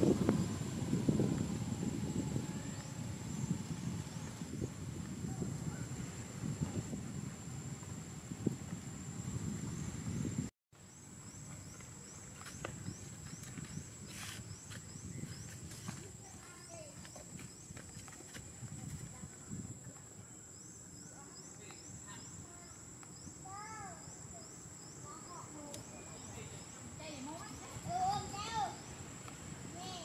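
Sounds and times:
low rumbling noise: 0.0 - 10.5
steady high-pitched whine: 0.0 - 13.5.

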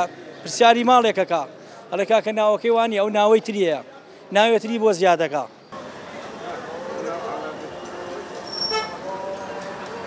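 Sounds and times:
street traffic: 0.0 - 10.0
background voices: 5.8 - 10.0
car horn toot: 8.6 - 9.0.

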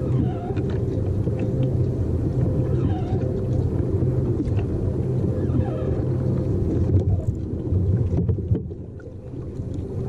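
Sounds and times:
wind and sea buffeting microphone: 0.0 - 10.0.

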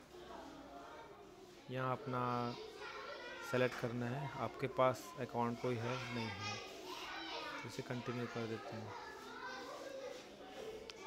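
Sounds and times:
faint background voices: 0.0 - 11.0.

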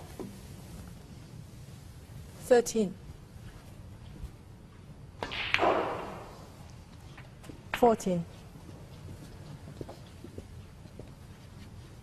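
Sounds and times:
cue tip striking ball: 5.2 - 6.4.

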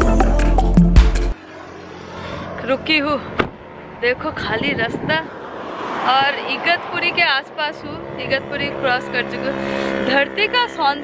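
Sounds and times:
car road and wind noise: 1.3 - 11.0
woman's voice: 2.6 - 3.4, 4.0 - 5.3, 6.0 - 11.0.

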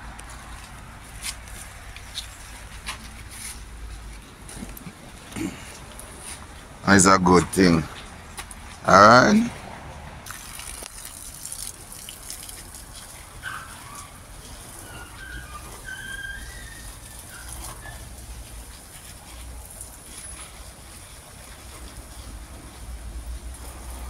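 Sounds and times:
hose spraying water on plants: 10.2 - 24.0.

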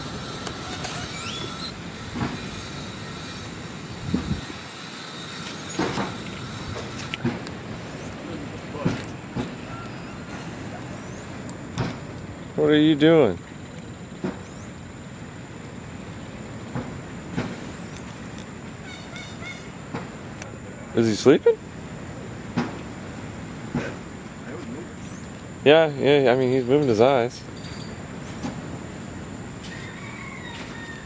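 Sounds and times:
thin high whine: 0.0 - 22.4
outdoor background noise: 0.0 - 31.0.

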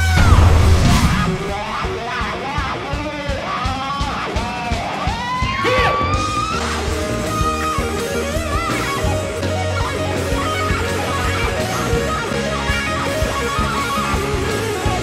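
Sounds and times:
rock music with electric guitar: 0.0 - 15.0.

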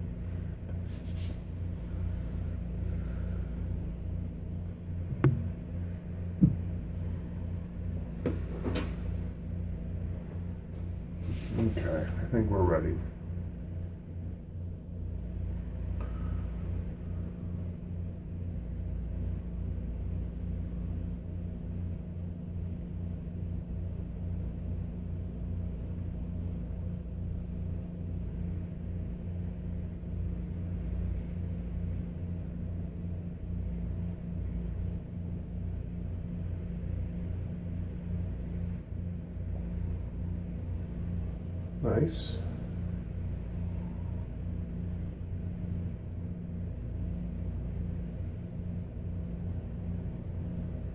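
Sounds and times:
low hum: 0.0 - 50.9.

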